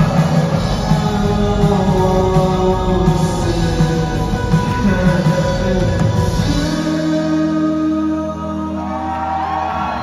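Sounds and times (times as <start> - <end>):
indie rock band playing: 0.0 - 10.0.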